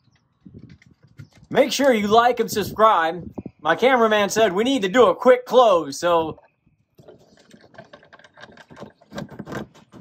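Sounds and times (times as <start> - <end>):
metal window frame rattling: 7.0 - 10.0.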